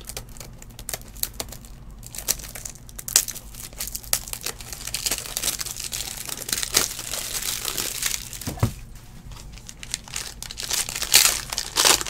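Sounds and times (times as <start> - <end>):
plastic packaging crinkling and tearing: 0.0 - 12.0.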